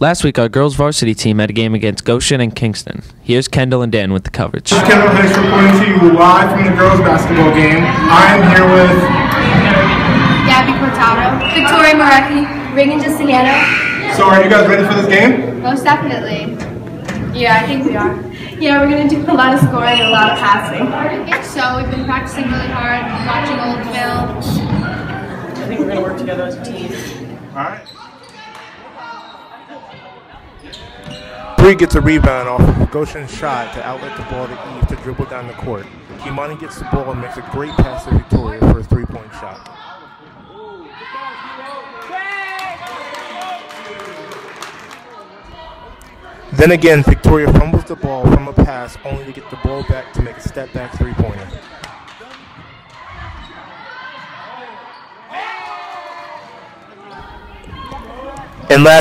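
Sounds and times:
people calling out: 4.7 - 14.6, 19.3 - 25.6
faint voices echoing in hall: 4.7 - 59.0
players and spectators calling out: 4.7 - 59.0
high held calls: 7.8 - 14.6.

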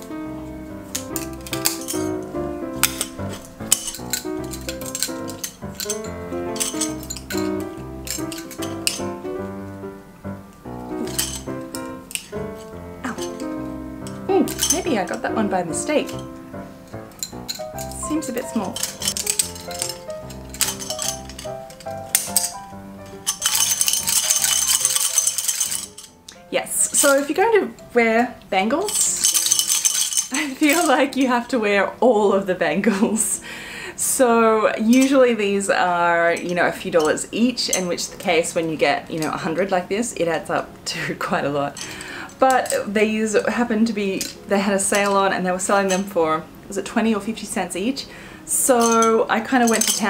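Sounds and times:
bangles clinking: 0.0 - 27.4, 28.8 - 31.2, 36.1 - 39.4, 41.6 - 42.9, 44.0 - 46.2, 48.6 - 50.0
piano background music: 0.0 - 50.0.

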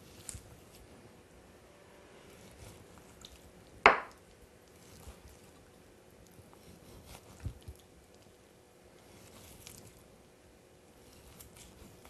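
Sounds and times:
knife knocking on cutting board: 3.9 - 4.1.

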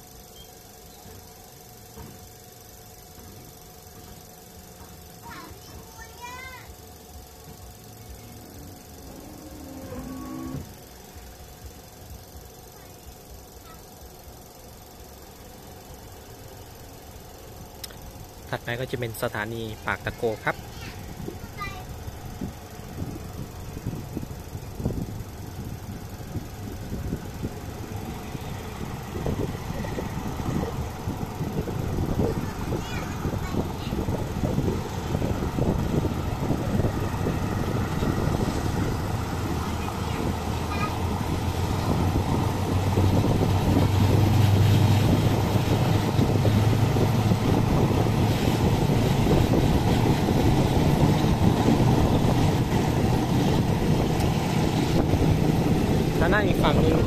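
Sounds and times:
train running drone: 0.0 - 57.0
wind on microphone: 21.0 - 57.0
wheels clattering on rails: 32.0 - 57.0.

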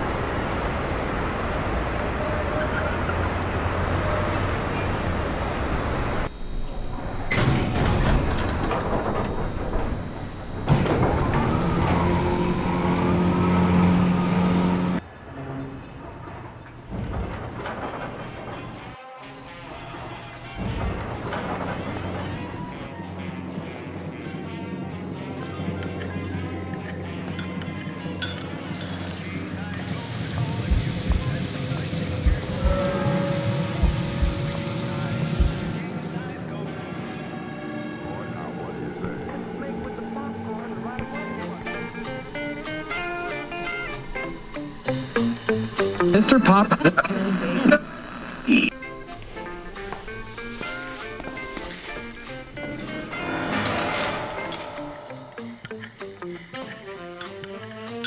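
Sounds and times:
steady low rumble: 30.6 - 36.4
faint held tone: 32.2 - 35.9
metal gate clattering shut: 53.4 - 55.2.

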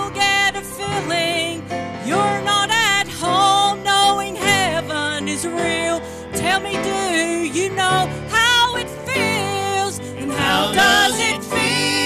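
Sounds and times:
woman singing gospel: 0.0 - 12.0
instrumental accompaniment: 6.9 - 12.0.

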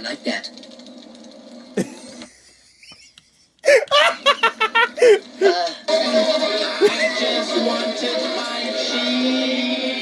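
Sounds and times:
man laughing: 1.8 - 5.7, 6.8 - 7.4.

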